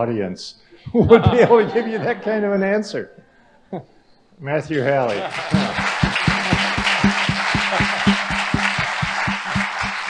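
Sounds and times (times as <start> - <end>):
audience applauding: 5.1 - 10.0
heavy rhythmic claps: 5.1 - 10.0.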